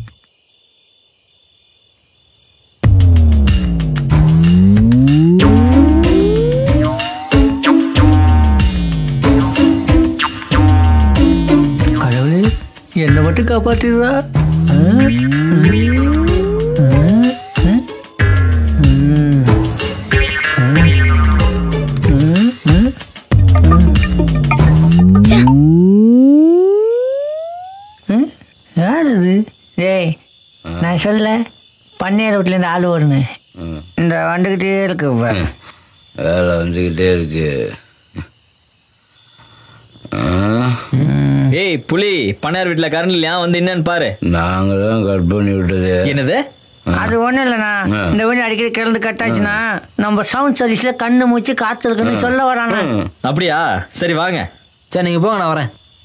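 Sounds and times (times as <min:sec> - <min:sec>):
crickets chirping: 0:00.0 - 0:56.0
rising synthesizer tone: 0:03.0 - 0:08.7, 0:14.5 - 0:17.9, 0:23.3 - 0:28.0
person making quavering cries: 0:14.5 - 0:19.8, 0:20.4 - 0:28.0.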